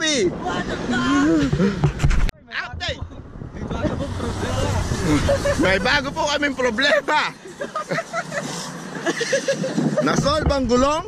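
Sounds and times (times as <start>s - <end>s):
people talking and laughing: 2.7s - 11.0s
passing road vehicle rumble: 2.8s - 10.0s.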